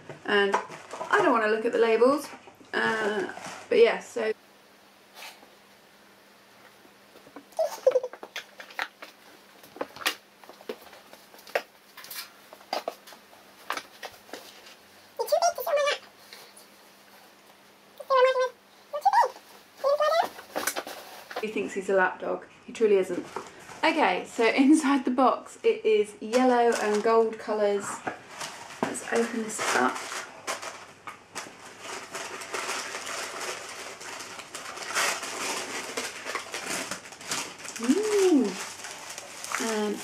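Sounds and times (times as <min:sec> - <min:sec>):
dog whining: 0:07.5 - 0:08.2, 0:19.0 - 0:20.4
paper rustling and crinkling: 0:07.7 - 0:17.3, 0:19.1 - 0:21.6, 0:28.1 - 0:40.0.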